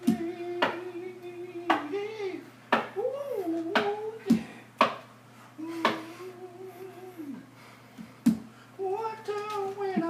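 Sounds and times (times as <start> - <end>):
man singing wordlessly: 0.0 - 4.5, 5.6 - 7.5, 8.8 - 10.0.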